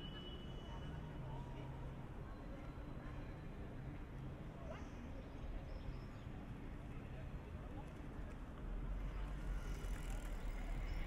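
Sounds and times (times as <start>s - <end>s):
low steady city rumble: 0.0s - 11.0s.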